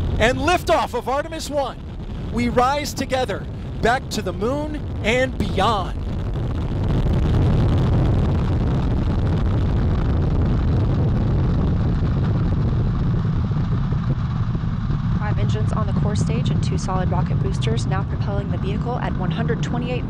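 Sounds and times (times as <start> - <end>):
rocket engines roaring at liftoff: 0.0 - 20.0.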